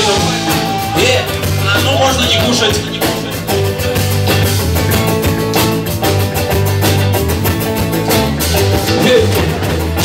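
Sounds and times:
bass guitar: 0.0s - 10.0s
drum kit steady beat: 0.0s - 10.0s
electric guitars: 0.0s - 10.0s.

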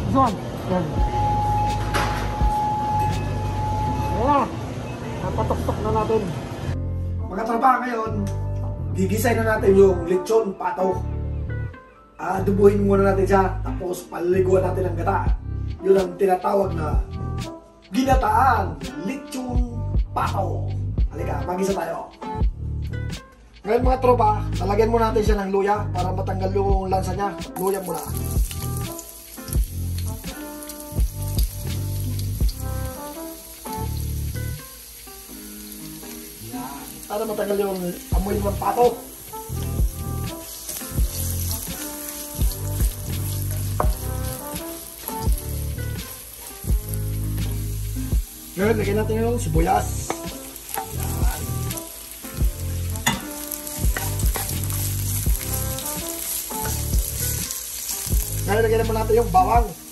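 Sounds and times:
background music with beat and bass: 0.1s - 4.3s, 15.1s - 16.1s, 16.7s - 36.6s, 37.9s - 59.9s
ginger sizzling in hot oil: 27.4s - 59.9s.

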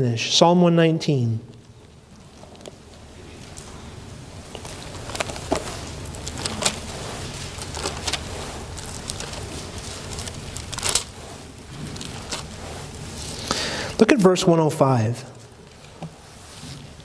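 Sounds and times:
low room hum: 0.0s - 17.0s
bible pages rustling: 1.5s - 14.4s, 15.3s - 17.0s.

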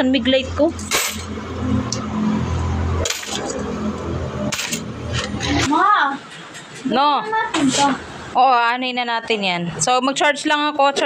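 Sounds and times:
coins clinking: 0.8s - 1.4s, 3.0s - 3.6s, 4.5s - 5.6s.

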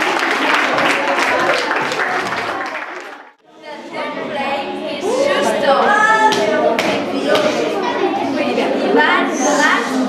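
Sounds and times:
audience clapping: 0.0s - 3.4s.

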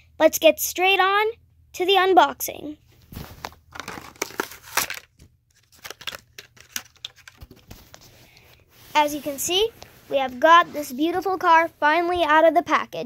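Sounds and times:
plastic package crinkling and ripping: 3.2s - 8.0s
clicks and rustles: 3.2s - 8.1s.

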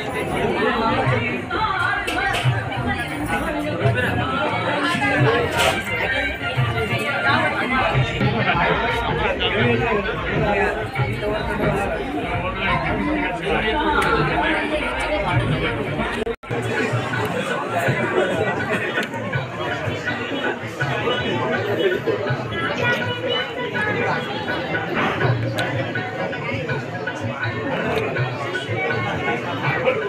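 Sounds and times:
chatter of many people: 0.0s - 30.0s.

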